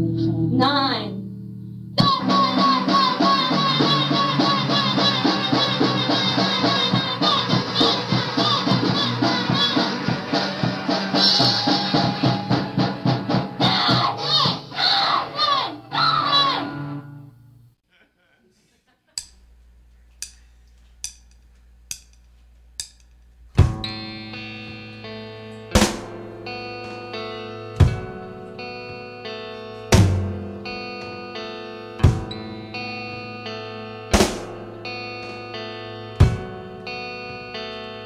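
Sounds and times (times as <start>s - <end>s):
rock band music: 2.0s - 17.2s, 23.6s - 38.0s.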